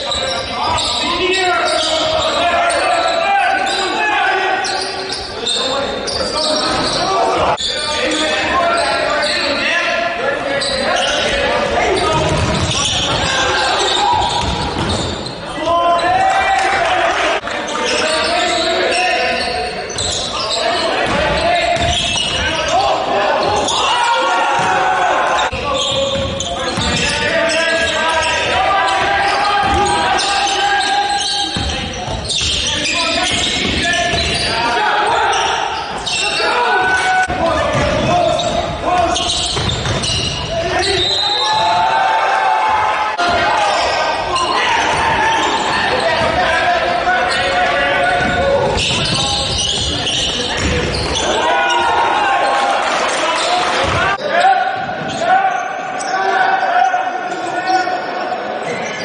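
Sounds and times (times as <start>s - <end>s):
indistinct voices calling out: 0.0s - 59.0s.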